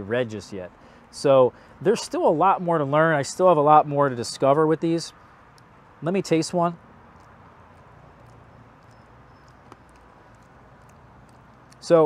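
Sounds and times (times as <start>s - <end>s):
man talking: 0.0s - 5.1s, 6.0s - 6.8s
faint eating clicks: 7.1s - 12.0s.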